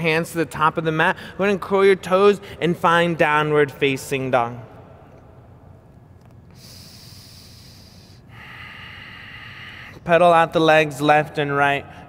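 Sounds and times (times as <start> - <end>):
person breathing: 6.5 - 10.1.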